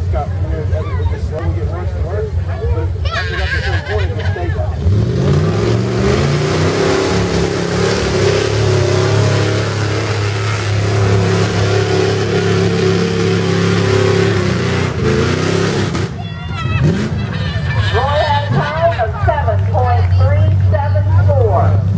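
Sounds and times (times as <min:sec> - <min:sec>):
truck engine revving hard: 0:00.0 - 0:21.9.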